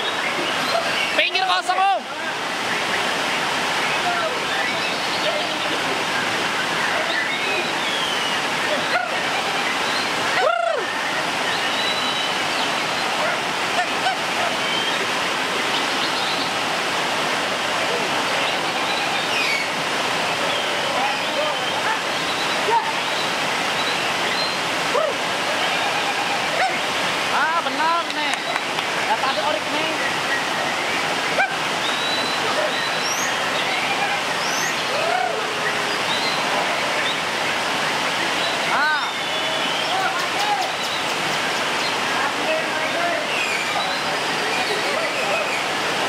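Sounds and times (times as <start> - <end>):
bird singing whistled notes: 7.0 - 8.4, 11.5 - 12.7.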